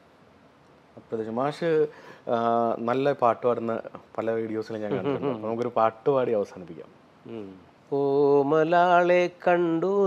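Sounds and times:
man singing unaccompanied: 7.3 - 10.0.

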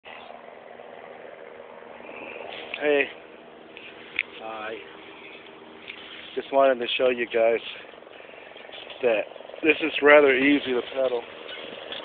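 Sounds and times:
bicycle whirring and rolling: 0.1 - 12.0.

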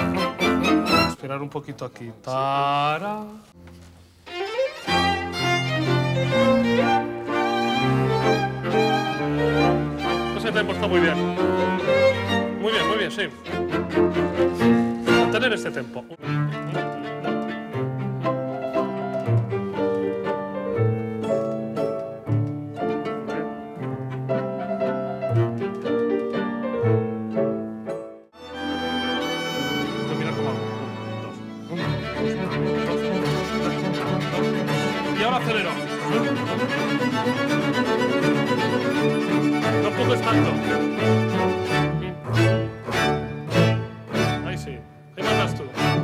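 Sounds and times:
string orchestra playing: 0.0 - 1.4, 4.2 - 46.0.

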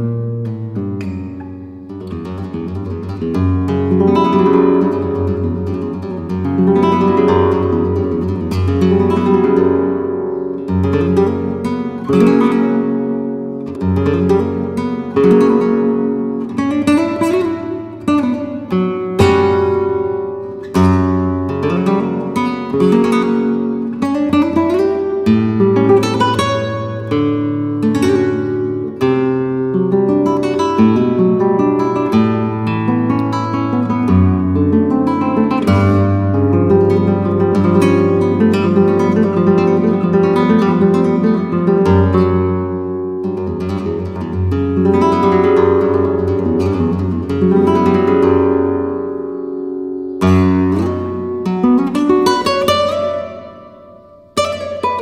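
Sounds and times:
solo flamenco guitar: 0.0 - 55.0.

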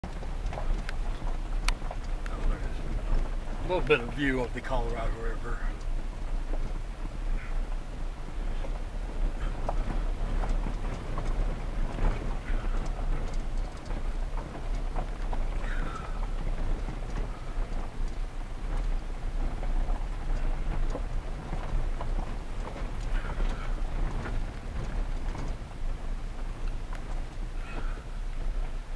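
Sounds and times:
stones crackling under tyres: 0.0 - 28.9
vehicle low rumble: 0.0 - 28.9.

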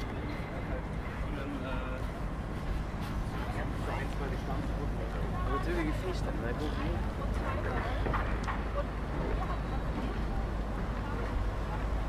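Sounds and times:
city street rumble: 0.0 - 12.0
people talking: 3.3 - 12.0.

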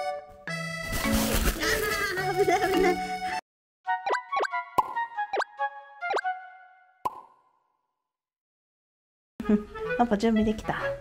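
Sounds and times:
bubbly pops rising in pitch: 4.1 - 5.5, 7.0 - 7.6.

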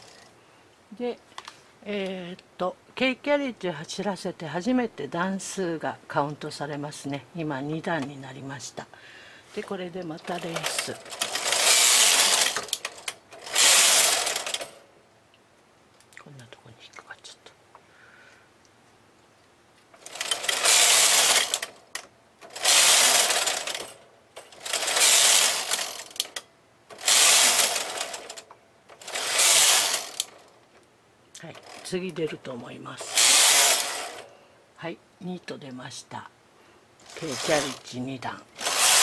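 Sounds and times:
knitting machine carriage clattering: 10.2 - 14.8, 20.0 - 21.8, 22.4 - 30.5, 31.5 - 32.2, 33.0 - 34.3, 37.0 - 37.9, 38.6 - 39.0.

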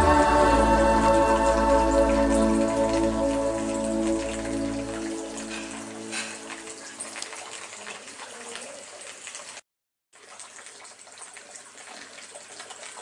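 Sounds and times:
soft background music: 0.0 - 7.4
water trickling and splashing: 0.0 - 13.0.

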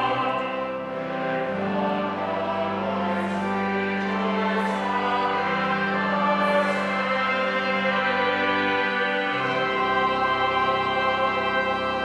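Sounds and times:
choir singing: 0.0 - 12.0
organ: 0.0 - 12.0.

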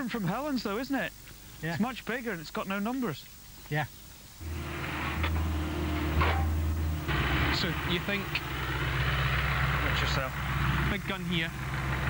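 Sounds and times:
excavator diesel engine running: 4.4 - 12.0.

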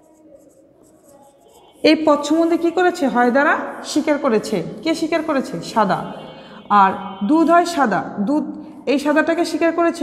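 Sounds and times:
marker writing on whiteboard: 0.0 - 8.0
woman speaking: 1.8 - 10.0.

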